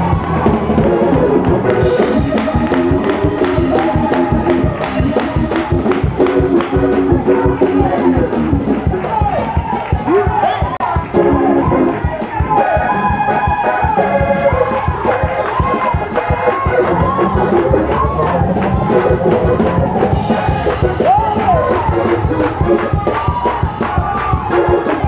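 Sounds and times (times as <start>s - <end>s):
person singing: 0.0s - 9.5s, 10.1s - 25.0s
congregation voices: 0.0s - 25.0s
gospel music: 0.0s - 25.0s
organ: 0.0s - 25.0s
quick steady drum beat: 0.0s - 25.0s.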